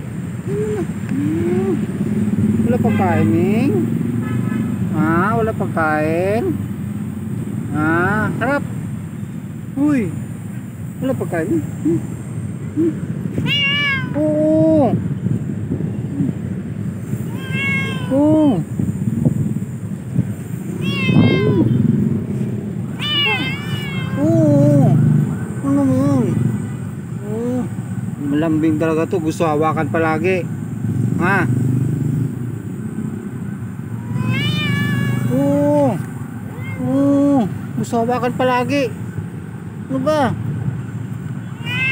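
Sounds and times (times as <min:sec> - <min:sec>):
cat meowing: 0:13.3 - 0:14.5, 0:17.0 - 0:18.7, 0:20.6 - 0:22.0, 0:22.9 - 0:25.0, 0:34.0 - 0:37.5, 0:41.4 - 0:41.9.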